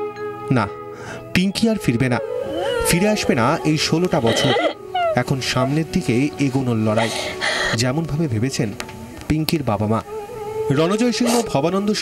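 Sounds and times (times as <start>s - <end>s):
person speaking: 1.7s - 8.6s, 10.7s - 12.0s.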